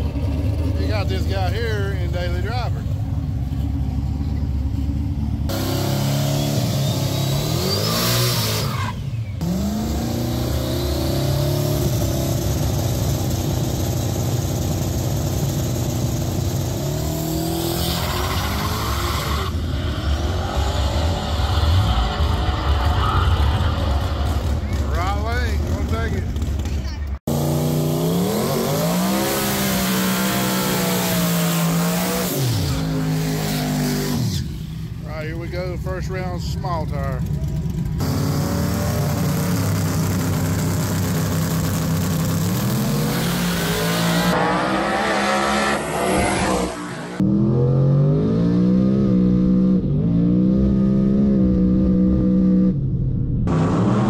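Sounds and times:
race car engines revving: 0:00.0 - 0:54.0
tire squeal: 0:05.7 - 0:09.4, 0:17.6 - 0:25.0.

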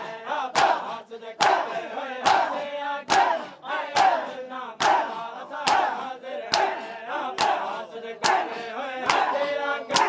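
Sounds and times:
crowd chanting shout: 0:00.0 - 0:10.0
hands slapping bare chests: 0:00.5 - 0:10.0.

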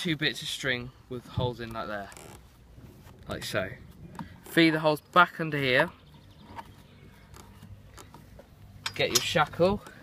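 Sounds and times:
low steady background noise: 0:00.0 - 0:10.0
soft handling clicks and rustles: 0:01.1 - 0:10.0.

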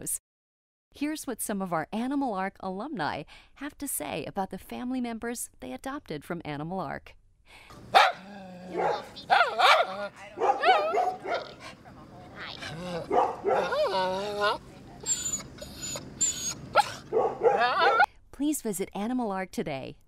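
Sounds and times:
small dogs barking: 0:07.7 - 0:18.1.

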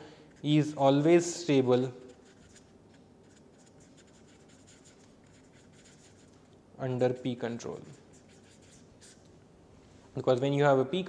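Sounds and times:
man speaking: 0:00.4 - 0:02.0, 0:06.8 - 0:08.0, 0:10.2 - 0:11.0
marker pen writing on paper: 0:02.0 - 0:06.4, 0:07.7 - 0:09.3.

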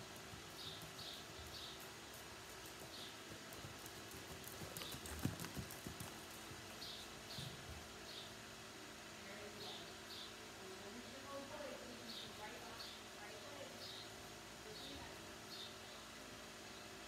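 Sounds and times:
horse hoofbeats on sand: 0:00.1 - 0:06.8.

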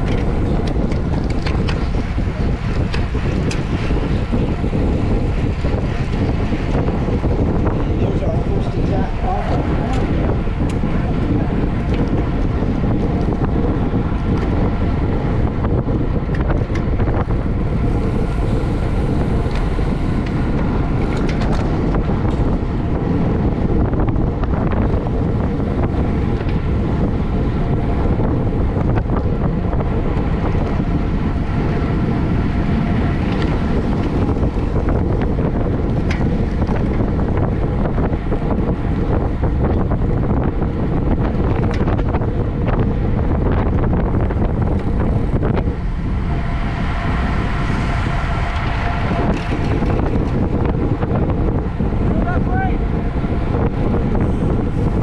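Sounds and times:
tyres humming on asphalt: 0:00.0 - 0:55.0
wind buffeting microphone: 0:00.0 - 0:55.0.

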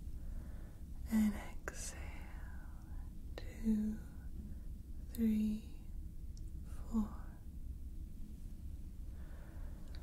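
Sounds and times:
soft whispering: 0:00.7 - 0:06.0, 0:06.6 - 0:07.6.

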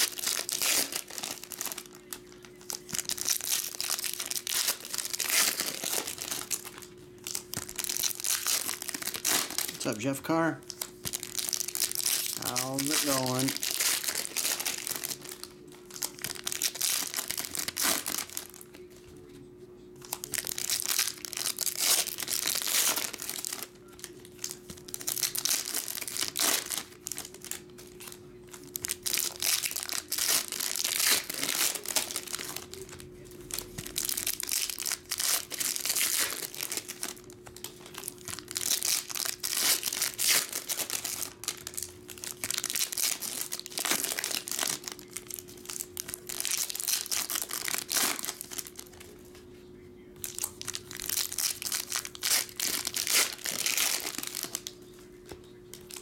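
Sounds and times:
foil wrappers crinkling and tearing: 0:00.0 - 0:19.4, 0:20.0 - 0:49.4, 0:50.1 - 0:56.0.

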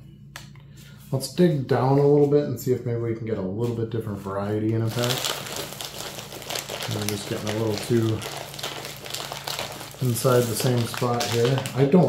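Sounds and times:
wrappers crinkling: 0:04.8 - 0:12.0.

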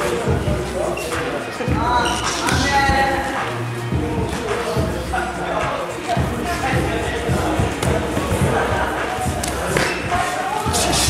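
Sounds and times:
song with singing and beat: 0:00.0 - 0:11.0.

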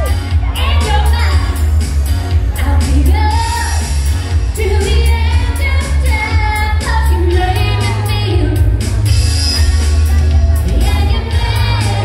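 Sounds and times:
bass and kick drum: 0:00.0 - 0:12.0
live pop band: 0:00.0 - 0:12.0
woman singing: 0:00.1 - 0:01.6, 0:02.6 - 0:03.9, 0:04.5 - 0:12.0.

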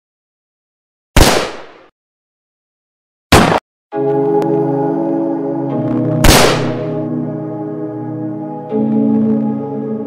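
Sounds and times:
loud sharp cartoon bang: 0:03.3 - 0:03.6, 0:06.2 - 0:06.9.

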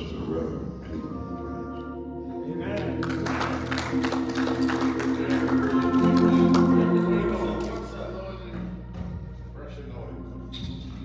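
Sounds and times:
organ playing sustained chords: 0:00.0 - 0:11.0.

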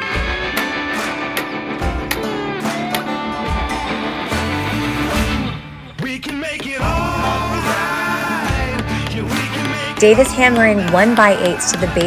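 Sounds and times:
background music led by guitar: 0:00.0 - 0:12.0.

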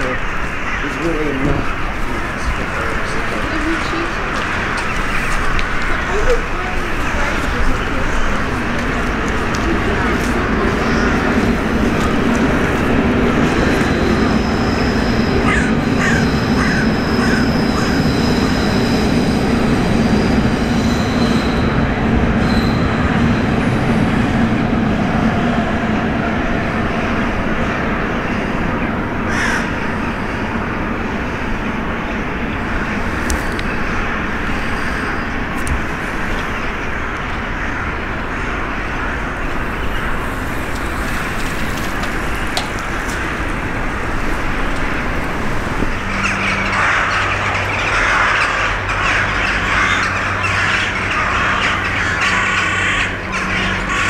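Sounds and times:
crows calling: 0:00.0 - 0:24.2, 0:26.8 - 0:54.0
city rumble: 0:00.0 - 0:54.0.

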